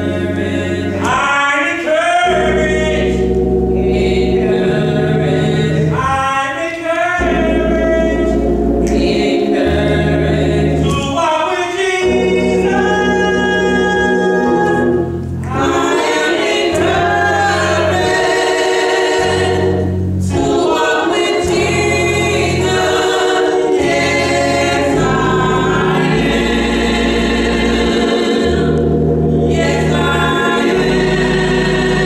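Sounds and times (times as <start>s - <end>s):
choir singing in harmony: 0.0s - 32.0s
low sustained bass notes: 2.3s - 6.0s, 7.2s - 10.9s, 12.1s - 15.9s, 16.7s - 32.0s.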